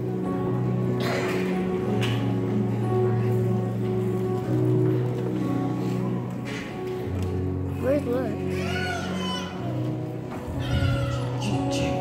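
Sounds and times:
held accompaniment chords: 0.0s - 12.0s.

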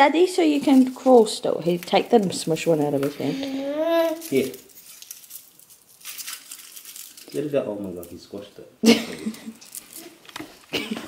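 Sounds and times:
foil wrapper crinkling: 0.5s - 3.0s, 3.8s - 8.3s, 9.4s - 10.7s.

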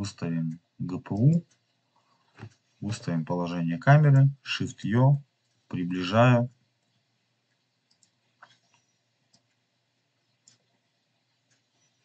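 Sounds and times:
computer mouse clicks: 7.5s - 9.7s, 10.3s - 12.0s.

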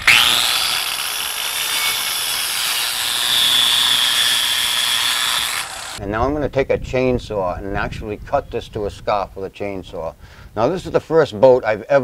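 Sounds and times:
angle grinder whining and cutting wood: 0.0s - 6.0s.

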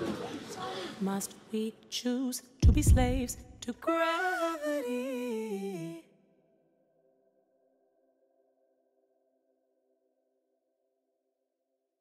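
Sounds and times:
person singing: 0.4s - 6.1s.

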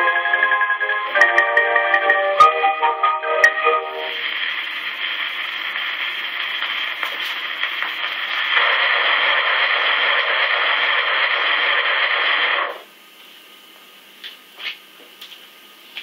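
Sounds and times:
record surface hiss and crackle: 2.9s - 16.0s.

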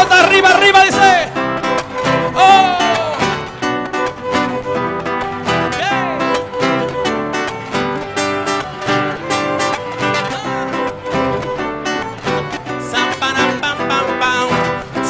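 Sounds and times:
strummed acoustic guitar: 0.0s - 15.0s
violin: 0.0s - 15.0s
cello: 1.4s - 15.0s.

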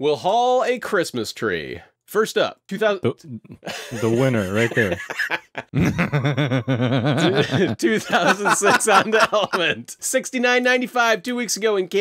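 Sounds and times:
man laughing: 3.2s - 9.8s.

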